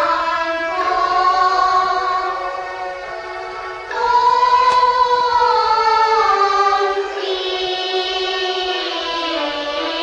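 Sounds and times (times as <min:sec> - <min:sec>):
quiet musical accompaniment: 0:00.0 - 0:10.0.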